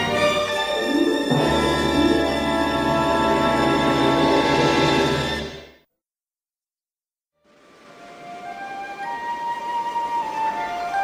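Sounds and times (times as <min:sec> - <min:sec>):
orchestral music holding a chord: 0:00.0 - 0:05.6.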